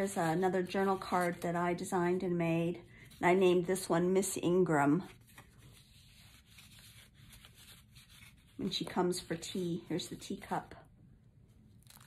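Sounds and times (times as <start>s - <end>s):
paper rustling and rubbing: 0.0s - 2.3s, 4.9s - 10.2s.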